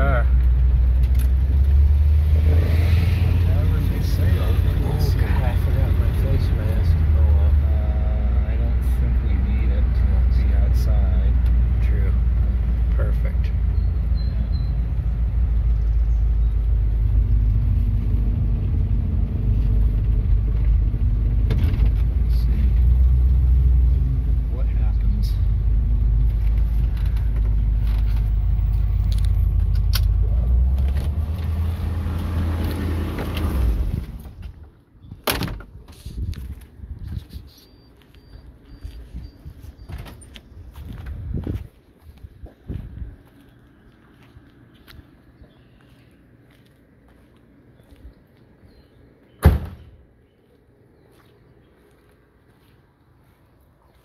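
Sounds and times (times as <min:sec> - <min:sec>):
car engine rumble from inside: 0:00.0 - 0:34.8
road noise: 0:00.0 - 0:54.0.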